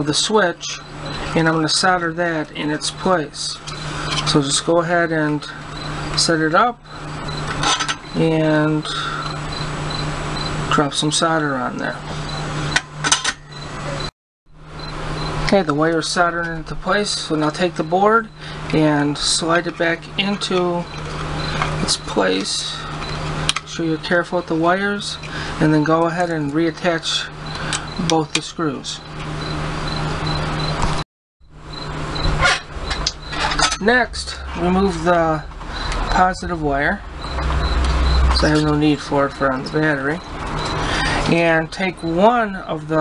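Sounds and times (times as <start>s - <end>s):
steady low hum: 0.0s - 43.0s
low electrical hum with hiss: 31.6s - 40.2s
person speaking: 33.1s - 40.2s.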